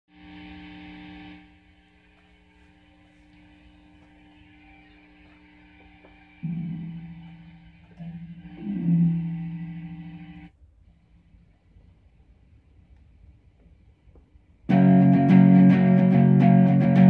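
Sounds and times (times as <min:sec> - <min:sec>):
electric guitar amp hum: 0:00.1 - 0:10.5, 0:14.7 - 0:17.0
guitar strings ringing: 0:06.4 - 0:10.5, 0:14.7 - 0:17.0.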